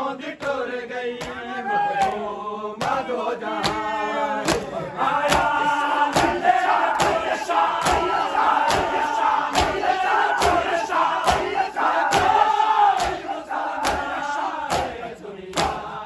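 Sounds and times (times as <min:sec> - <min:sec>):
men chanting: 0:00.0 - 0:16.0
hands slapping chests: 0:01.2 - 0:03.8, 0:04.4 - 0:15.9.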